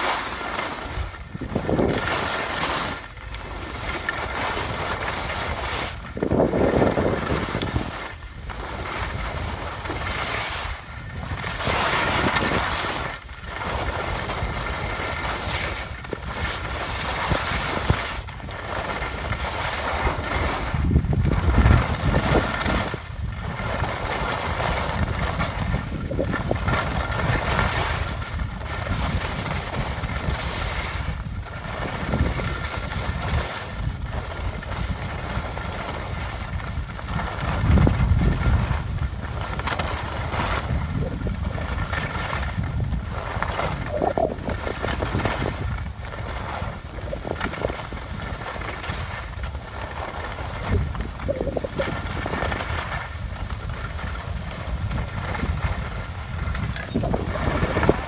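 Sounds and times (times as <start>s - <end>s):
skis scraping over packed snow: 0.0s - 58.0s
wind buffeting microphone: 0.0s - 58.0s.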